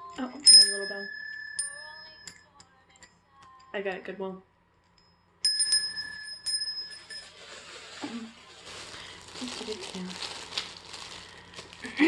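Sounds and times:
brass hand bell ringing: 0.4s - 2.4s, 5.4s - 7.2s
plastic bag crinkling: 7.0s - 12.0s.

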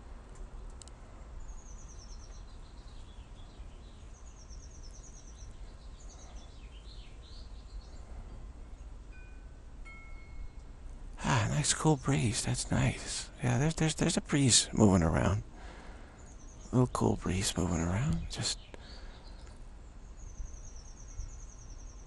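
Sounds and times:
birds singing descending trills: 1.4s - 22.0s
clear steady tones: 8.7s - 18.5s.

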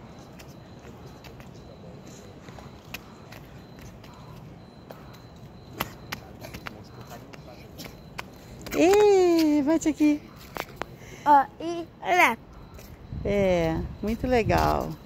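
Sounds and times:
low background noise: 0.0s - 15.0s
flip-flops slapping on paving: 0.2s - 11.0s.

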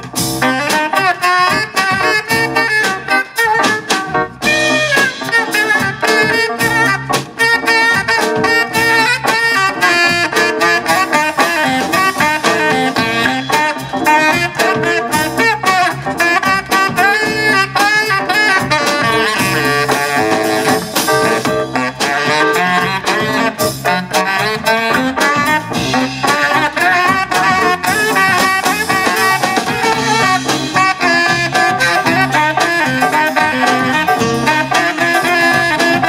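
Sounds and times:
drums: 0.0s - 36.0s
electric bass: 0.0s - 36.0s
keyboard: 0.0s - 36.0s
saxophones: 0.2s - 36.0s.

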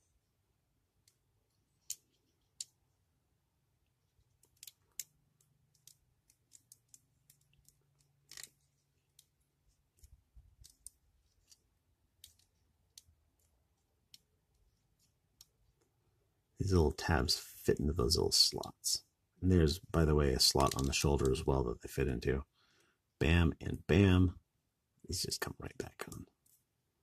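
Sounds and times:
plastic parts clicking and snapping: 1.8s - 2.8s, 4.3s - 14.6s, 20.6s - 21.4s.

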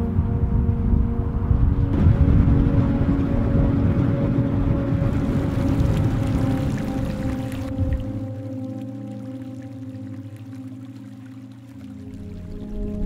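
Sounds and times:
steady low rumble: 0.0s - 9.0s
sustained held chords: 0.0s - 13.0s.

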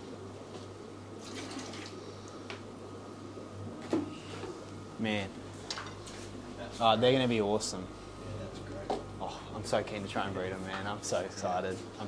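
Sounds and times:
steady low hum: 0.0s - 12.0s
water trickling and splashing: 1.2s - 2.1s.

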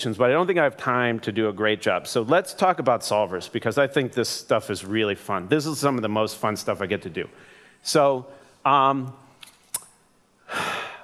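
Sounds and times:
man drawing a breath: 7.4s - 8.6s, 10.4s - 11.0s
mouth clicks: 9.4s - 10.0s.

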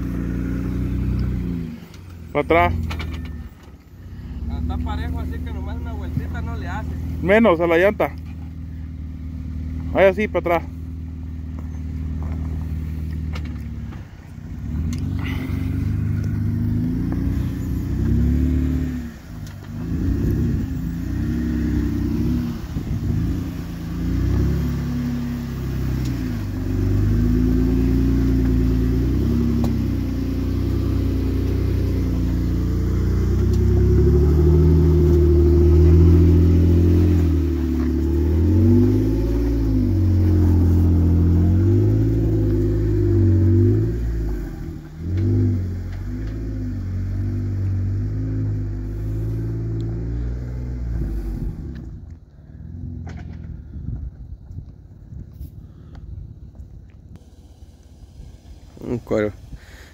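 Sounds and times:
off-road engine throttle blips: 0.0s - 59.9s.

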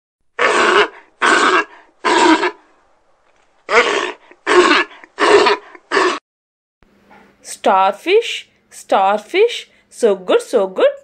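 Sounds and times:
sea lions barking: 0.4s - 2.6s, 3.7s - 6.2s.

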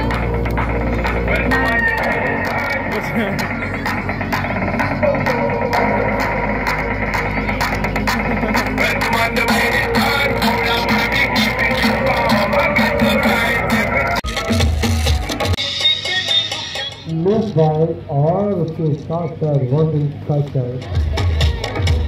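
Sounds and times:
music with steady beat over loudspeaker: 0.0s - 17.6s, 20.4s - 22.0s.

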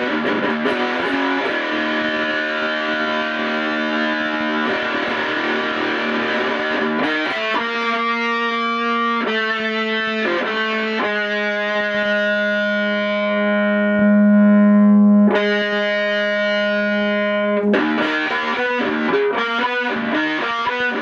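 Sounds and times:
distorted electric guitar chords: 0.0s - 21.0s.

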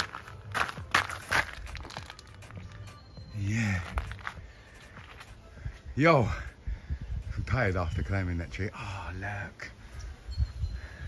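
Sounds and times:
footsteps on gravel: 0.0s - 5.5s.

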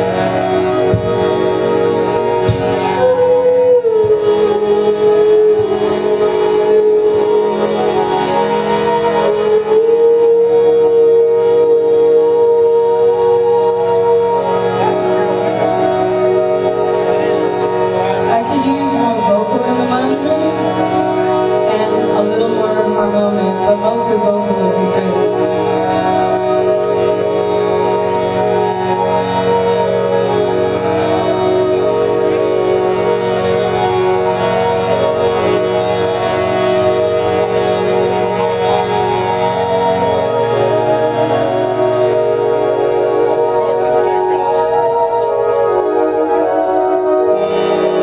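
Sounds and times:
live band instrumental chords: 0.0s - 48.0s.

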